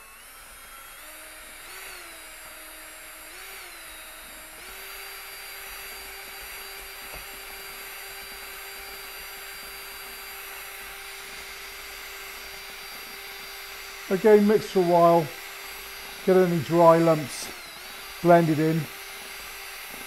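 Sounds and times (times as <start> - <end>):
drill motor whining: 0.0 - 20.0.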